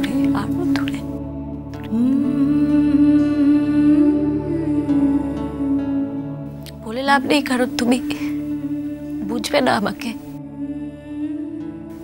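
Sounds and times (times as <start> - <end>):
sustained musical drone: 0.0 - 12.0.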